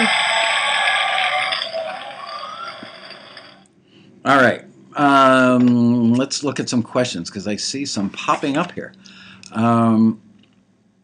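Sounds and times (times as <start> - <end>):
crowd applause and cheering: 0.0 - 3.6.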